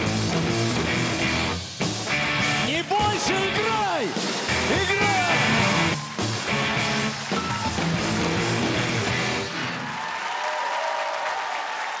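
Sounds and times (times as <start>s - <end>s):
live rock band with electric guitar: 0.0s - 10.0s
audience applause: 4.3s - 12.0s.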